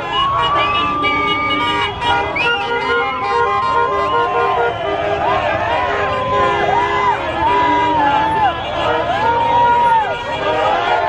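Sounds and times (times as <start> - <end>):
car horns honking: 0.0 - 11.0
crowd shouting: 0.0 - 11.0
low rumble of traffic: 0.0 - 11.0.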